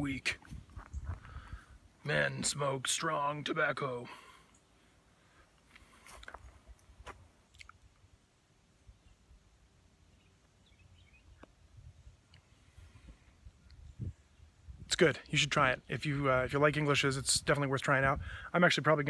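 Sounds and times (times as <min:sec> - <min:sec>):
mouth clicks and lip smacks: 0:07.5 - 0:07.8.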